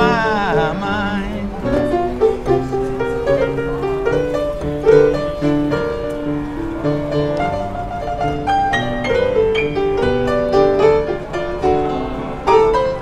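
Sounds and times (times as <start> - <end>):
slow blues piano: 0.0 - 13.0.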